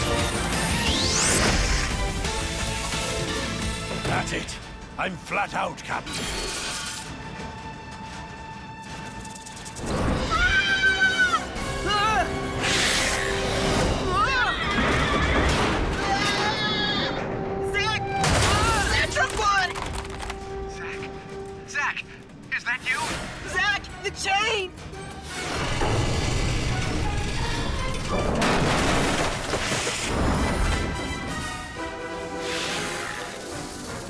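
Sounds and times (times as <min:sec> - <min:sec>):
action music with held tone: 0:00.0 - 0:34.0.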